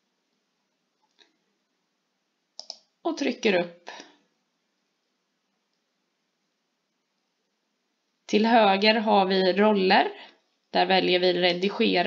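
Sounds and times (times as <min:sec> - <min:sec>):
computer mouse clicks: 0:02.6 - 0:02.9.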